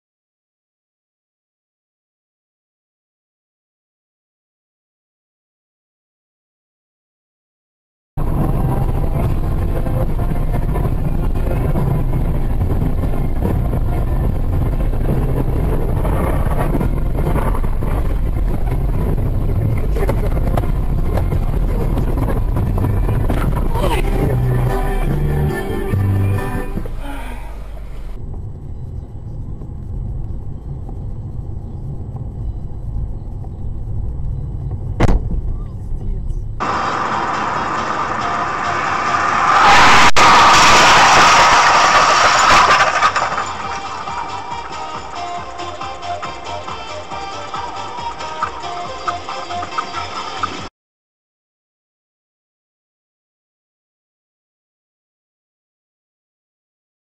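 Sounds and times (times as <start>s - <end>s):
engine and tyres rumbling on snow: 8.2s - 50.7s
quiet car cabin hum: 8.4s - 36.7s.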